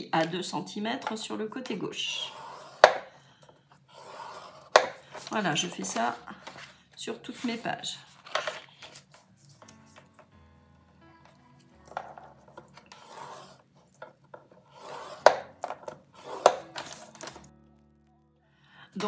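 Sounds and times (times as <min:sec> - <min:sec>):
faint background music: 0:00.0 - 0:19.0
bone folder scraping paper: 0:02.2 - 0:03.0, 0:03.8 - 0:10.3, 0:11.9 - 0:17.4
paper rustling: 0:03.9 - 0:10.4, 0:11.4 - 0:17.9.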